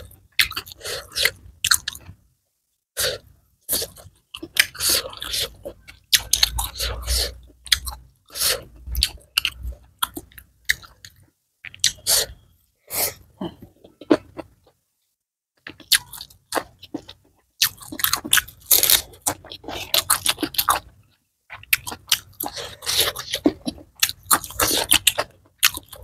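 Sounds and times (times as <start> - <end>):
person chewing food: 0.0 - 2.2, 3.0 - 12.5, 13.1 - 14.8, 15.6 - 26.0.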